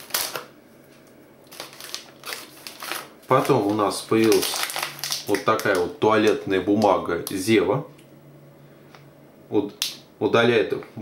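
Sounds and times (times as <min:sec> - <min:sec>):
plastic packaging crinkling: 0:00.0 - 0:00.5, 0:01.4 - 0:07.5.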